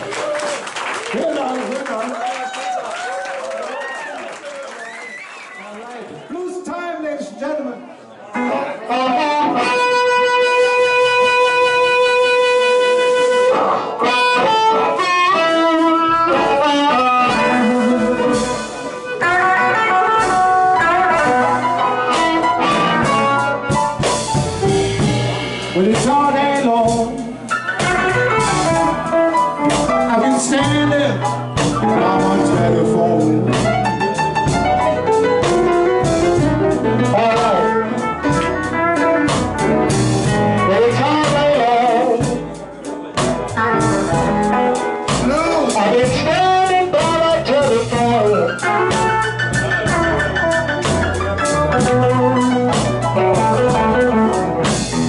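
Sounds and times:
live blues band playing: 0.0 - 1.9, 8.2 - 55.0
bending lead melody: 8.4 - 55.0
drums: 8.4 - 55.0
electric guitar quick notes: 8.4 - 55.0
upright bass: 8.4 - 55.0.

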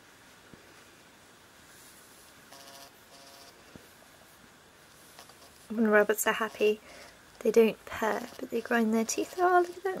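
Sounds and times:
rabbit grinding teeth: 5.2 - 10.0.

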